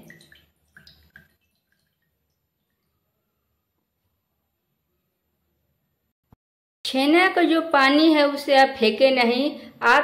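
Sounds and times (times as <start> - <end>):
liquid dripping into bowl: 0.0 - 3.0.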